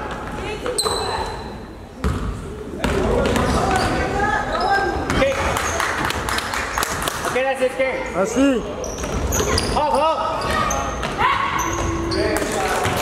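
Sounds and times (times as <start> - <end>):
echoing voices and shouts: 3.0 - 13.0.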